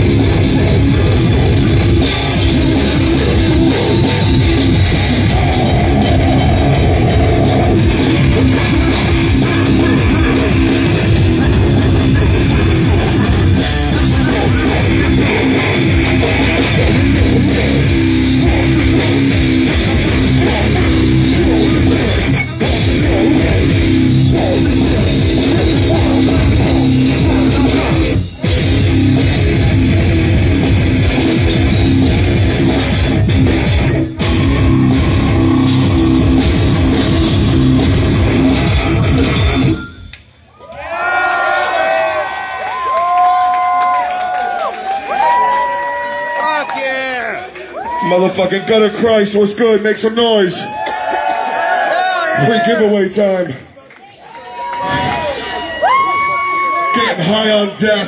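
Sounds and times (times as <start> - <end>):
death metal band playing live: 0.0 - 40.1
crowd yelling and cheering: 0.0 - 58.0.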